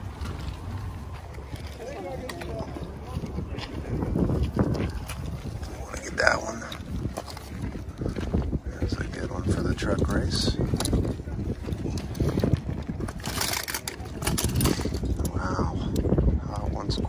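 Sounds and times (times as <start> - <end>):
wind rumble on microphone: 0.0 - 17.0
toy cars clicking and rattling: 13.1 - 15.3.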